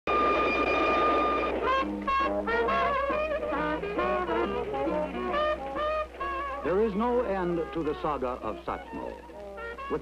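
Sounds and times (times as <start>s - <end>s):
running train rumble: 0.1s - 7.7s
brass band jazz: 0.2s - 7.8s, 8.8s - 10.0s
train horn: 0.9s - 6.6s.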